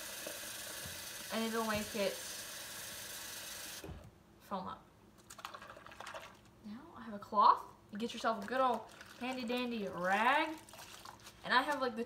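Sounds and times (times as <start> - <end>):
tap running water into sink: 0.0 - 2.3.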